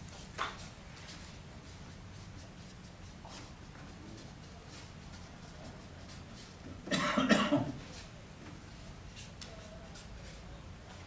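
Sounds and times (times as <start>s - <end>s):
marker strokes on paper pad: 0.1s - 6.7s
person coughing: 6.8s - 7.8s.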